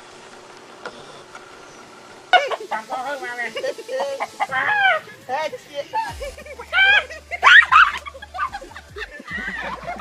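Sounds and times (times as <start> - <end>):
chickens squawking and clucking: 4.1 - 5.3, 6.7 - 8.6.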